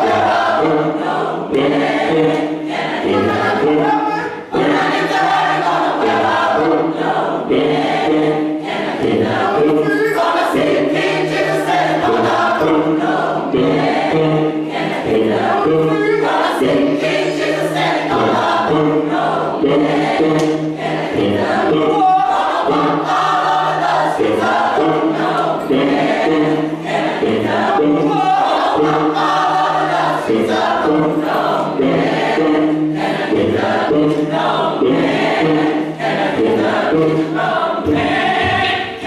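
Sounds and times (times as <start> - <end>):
choir singing worship song: 0.0 - 39.0.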